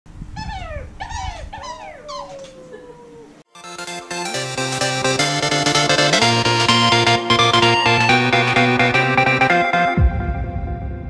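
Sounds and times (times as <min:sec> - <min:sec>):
dog-like whimpering whines: 0:00.4 - 0:03.4
music: 0:03.5 - 0:11.0.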